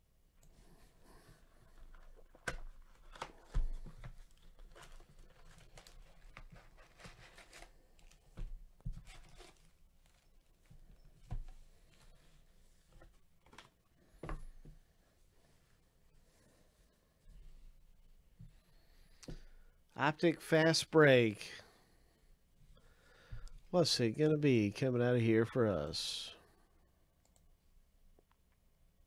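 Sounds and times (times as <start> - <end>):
card packs rustling and scraping: 1.8 - 10.5.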